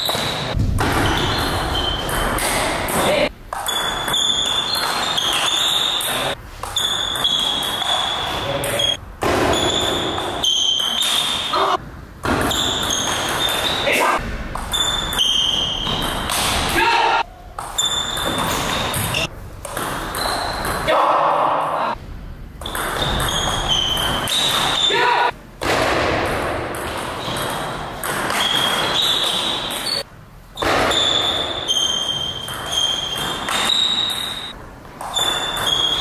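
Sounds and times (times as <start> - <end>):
sneakers squeaking on floor: 0.0 - 21.0, 22.6 - 25.4, 26.8 - 36.0.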